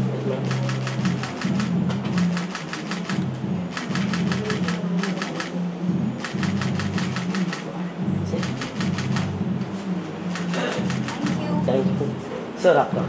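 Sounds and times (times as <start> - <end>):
camera shutter clicks: 0.5 - 5.5
background music with bass: 8.0 - 9.7.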